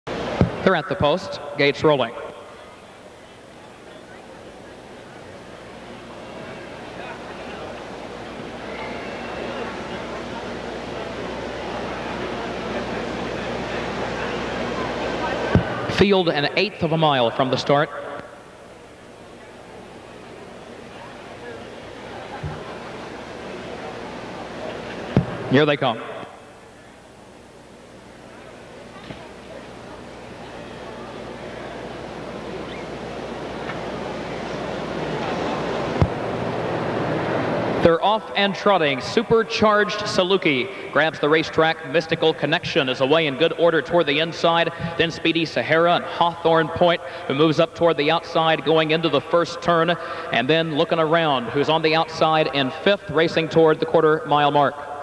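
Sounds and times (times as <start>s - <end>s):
indistinct crowd voices: 0.1s - 55.0s.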